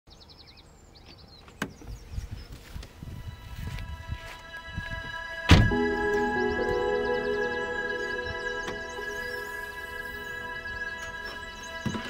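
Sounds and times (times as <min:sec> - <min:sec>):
small birds chirping: 0:00.1 - 0:03.4.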